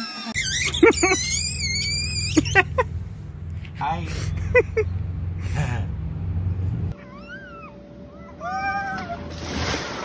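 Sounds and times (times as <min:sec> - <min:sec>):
high-pitched rising falling calls: 0:00.0 - 0:02.8.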